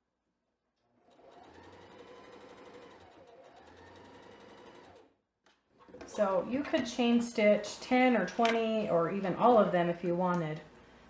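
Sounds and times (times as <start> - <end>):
electric sewing machine stitching: 0.9 - 5.1.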